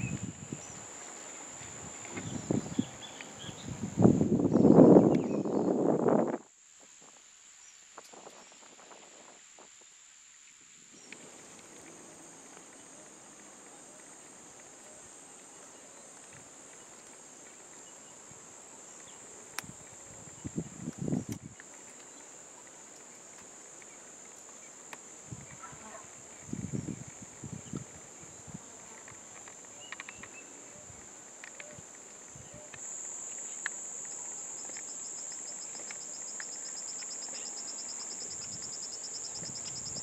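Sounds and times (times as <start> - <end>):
insects chirring: 0.0 - 40.0.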